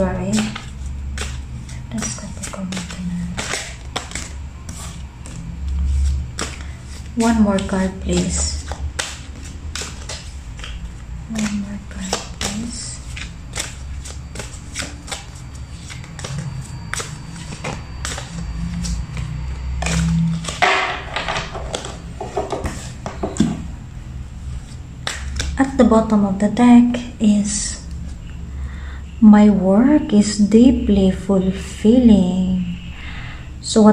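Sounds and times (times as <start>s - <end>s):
cards being shuffled: 0.0s - 23.7s, 24.4s - 25.8s.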